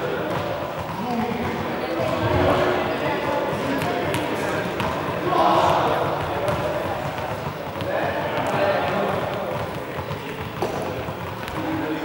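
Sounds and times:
voices echoing in a hall: 0.0s - 12.0s
balls bouncing on hard floor: 0.1s - 12.0s.

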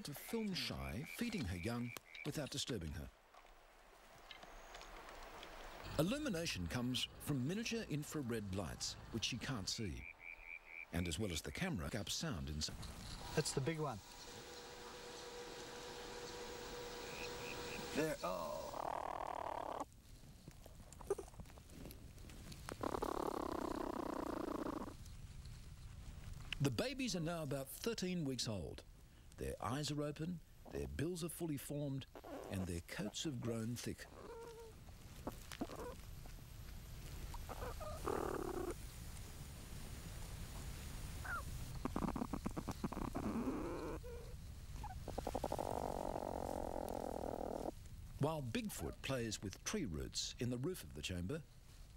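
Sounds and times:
platypus purring: 17.2s - 19.9s, 21.0s - 21.4s, 22.7s - 25.0s, 34.1s - 36.0s, 37.4s - 38.8s, 41.2s - 47.8s.

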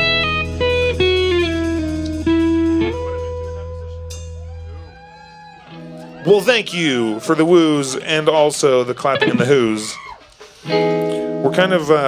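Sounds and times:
electric guitar chord ringing: 0.0s - 5.1s.

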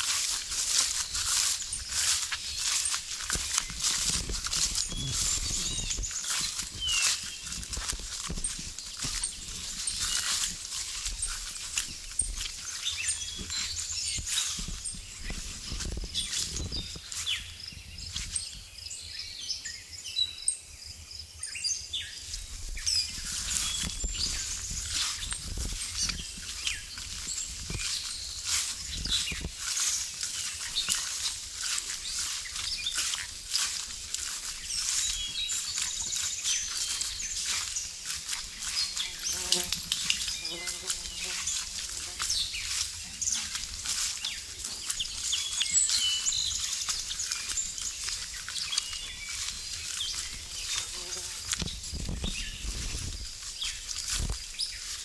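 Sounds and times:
footsteps through wet grass: 0.0s - 19.4s, 21.9s - 55.0s
birds chirping: 0.0s - 55.0s.

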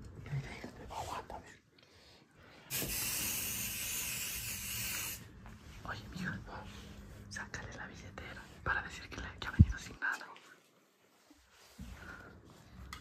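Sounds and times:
aerosol spray hissing: 2.7s - 5.2s.

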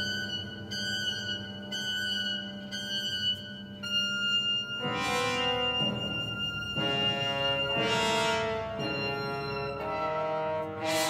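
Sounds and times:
sustained low orchestral chord: 4.8s - 11.0s.

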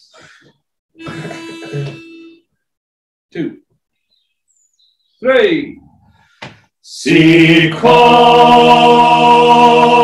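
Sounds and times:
pitch pipe reed note: 1.0s - 2.4s.

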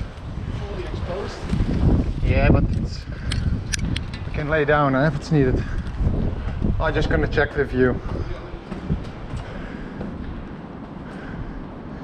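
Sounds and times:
wind rumble on microphone: 0.0s - 12.0s
footsteps on steel grating stairs: 5.1s - 12.0s.

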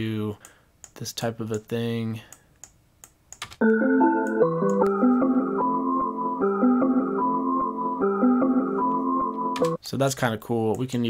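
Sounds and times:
chopped melodic music loop: 3.6s - 9.8s.

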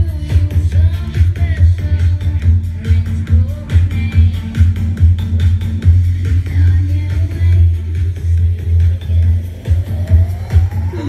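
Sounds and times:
electronic dance music through speakers: 0.0s - 11.0s.

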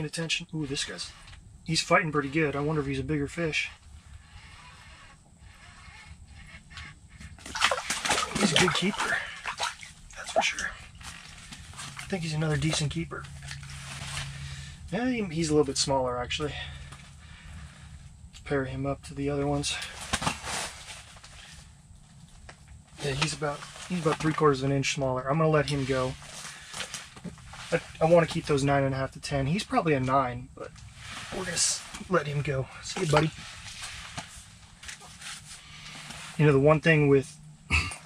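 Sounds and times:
rustling of gear: 3.7s - 14.9s, 19.7s - 24.5s, 25.7s - 28.4s, 30.7s - 36.4s
fish splashing and flopping: 6.4s - 12.2s.

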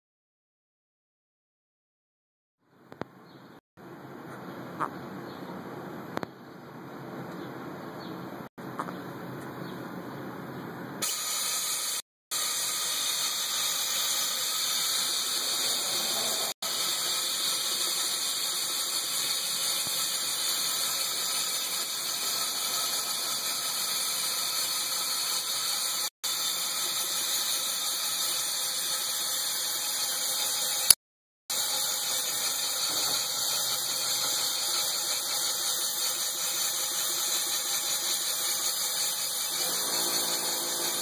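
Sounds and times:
spray gun air hissing: 11.0s - 26.0s.

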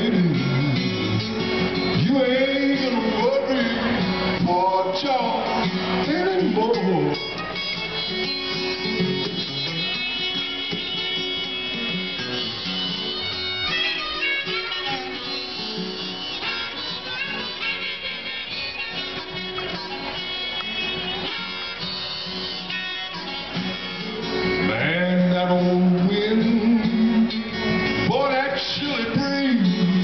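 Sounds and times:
acoustic guitar playing blues: 0.0s - 30.0s
harmonica bending notes: 0.0s - 30.0s.

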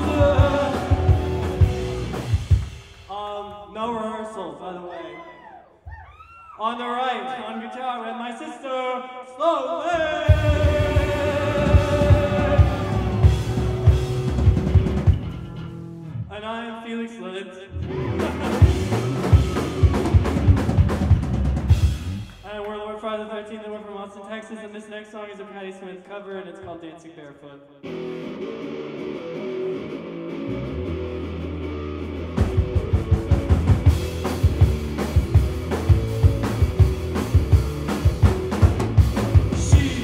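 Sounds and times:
electric guitar: 0.0s - 3.0s, 10.3s - 16.3s, 17.7s - 22.4s, 27.8s - 40.0s
drum kit steady beat: 0.0s - 3.2s, 10.3s - 15.5s, 18.2s - 22.6s, 32.4s - 40.0s
live rock band playing: 0.0s - 3.2s, 10.3s - 16.2s, 17.8s - 22.4s, 27.8s - 40.0s
bass guitar: 0.0s - 3.3s, 10.3s - 16.3s, 17.7s - 22.6s, 27.8s - 40.0s
bass drum hits: 10.3s - 15.7s, 18.2s - 22.4s.

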